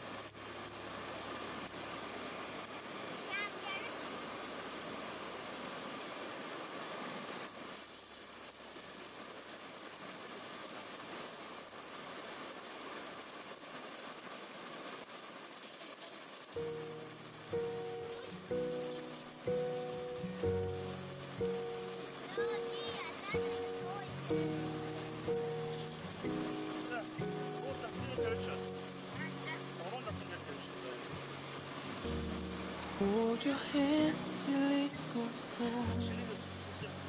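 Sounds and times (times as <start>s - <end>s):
sausages sizzling in a frying pan: 0.0s - 3.8s, 7.4s - 37.0s
music with slow melody and bass: 16.6s - 37.0s.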